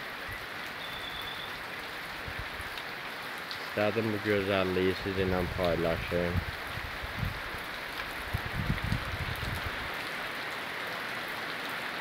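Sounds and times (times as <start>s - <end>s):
steady rain on foliage: 0.0s - 12.0s.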